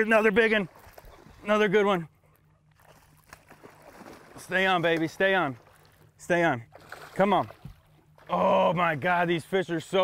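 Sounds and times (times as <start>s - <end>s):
fish splashing in water: 2.7s - 6.1s, 6.7s - 8.6s.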